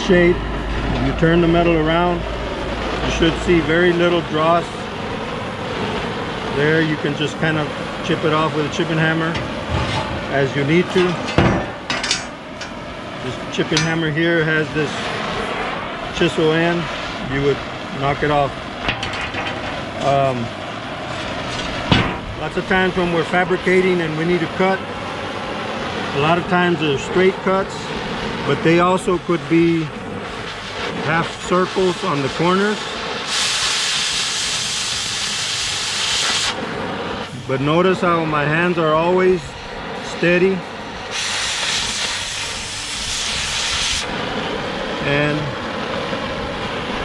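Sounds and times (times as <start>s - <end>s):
steady hissing rush: 0.0s - 47.0s.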